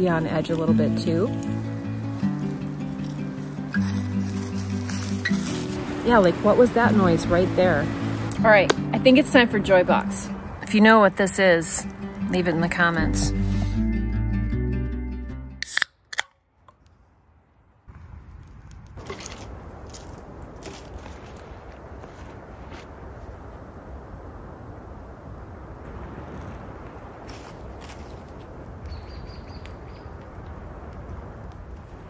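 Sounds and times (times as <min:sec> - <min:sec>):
campfire hissing and popping: 0:00.0 - 0:13.9, 0:17.8 - 0:32.0
background music: 0:00.0 - 0:15.8.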